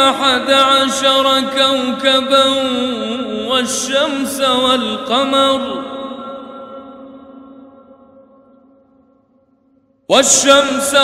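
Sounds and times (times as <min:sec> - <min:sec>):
man chanting recitation: 0:00.0 - 0:06.7, 0:10.1 - 0:11.0.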